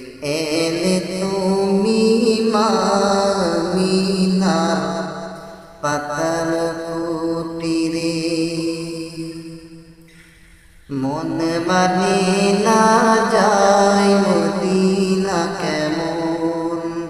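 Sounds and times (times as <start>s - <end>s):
man singing long held notes: 0.0s - 9.8s, 10.9s - 17.0s.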